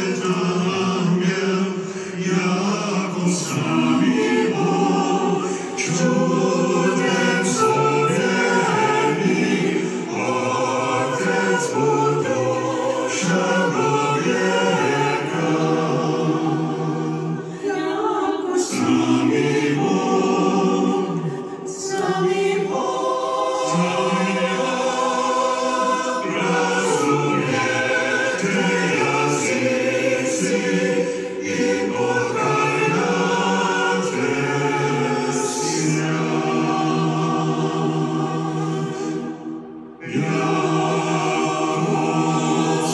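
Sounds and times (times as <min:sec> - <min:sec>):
choir singing a hymn: 0:00.0 - 0:42.9.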